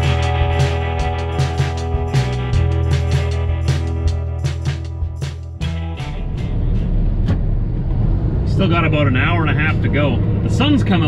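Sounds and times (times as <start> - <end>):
road noise: 0.0 - 11.0
truck diesel engine drone: 0.0 - 11.0
man talking: 8.5 - 11.0.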